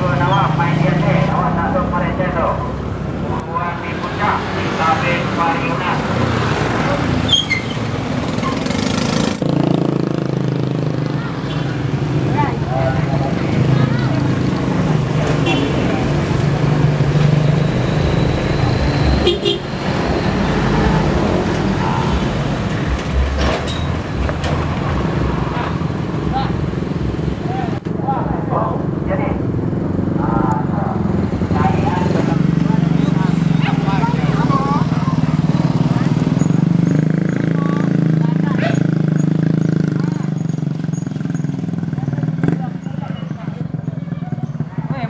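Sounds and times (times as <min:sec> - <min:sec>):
people talking: 0:00.0 - 0:06.2, 0:11.0 - 0:16.4, 0:27.4 - 0:29.4, 0:30.2 - 0:36.5, 0:37.4 - 0:38.9, 0:39.8 - 0:40.4, 0:41.9 - 0:45.0.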